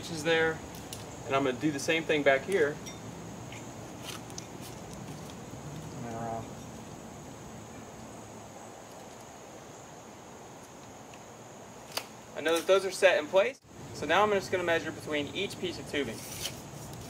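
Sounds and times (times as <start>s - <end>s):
steady high-pitched hiss: 0.0s - 17.0s.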